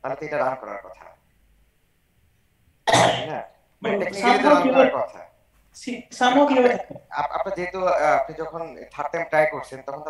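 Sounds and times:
person coughing: 2.9 - 3.4
person speaking: 3.0 - 10.0.

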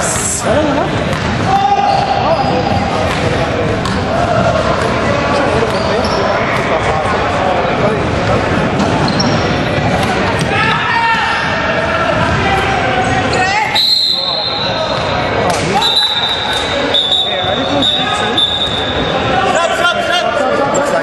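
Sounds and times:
players' voices echoing: 0.0 - 21.0
high whistle-like tone: 13.8 - 14.9, 15.8 - 19.0.

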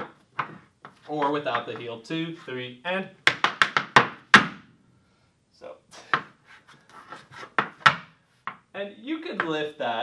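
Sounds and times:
hard shoes tapping wooden floor: 0.0 - 2.0, 3.2 - 4.7, 7.0 - 8.7.

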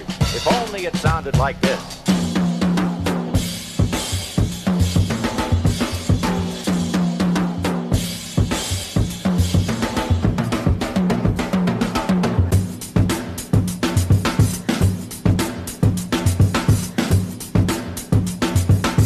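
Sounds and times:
swing music with drum kit: 0.0 - 19.0.

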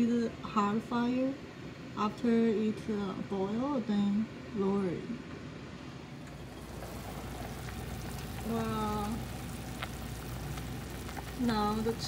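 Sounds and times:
soup bubbling: 6.3 - 12.0.

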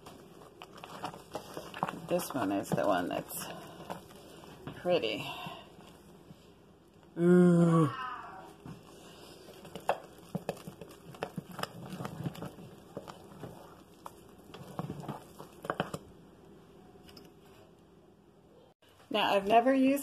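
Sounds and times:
wooden spoon stirring thick soap: 0.0 - 7.1, 8.5 - 17.8.

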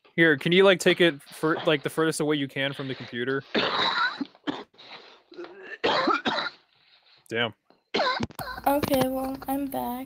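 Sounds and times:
person coughing: 3.5 - 6.6, 7.9 - 8.6.

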